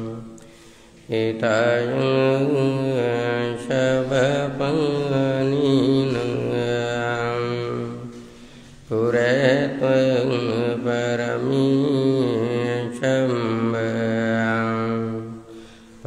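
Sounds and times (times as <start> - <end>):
man chanting through a microphone: 1.1 - 15.5.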